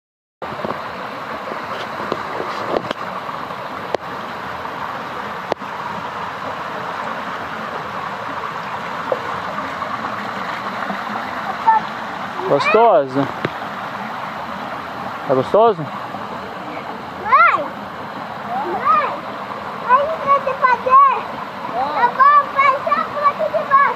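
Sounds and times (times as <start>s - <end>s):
water rushing along stone channel: 0.4s - 23.9s.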